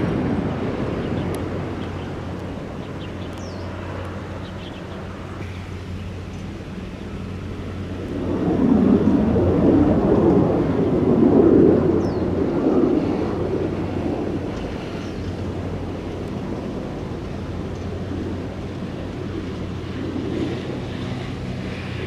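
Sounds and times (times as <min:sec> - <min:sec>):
fighter jet passing overhead: 0:00.0 - 0:22.0.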